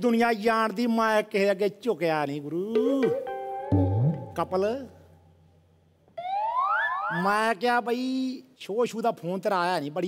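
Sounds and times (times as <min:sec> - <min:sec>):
rising siren-like tone: 0:06.2 - 0:07.3.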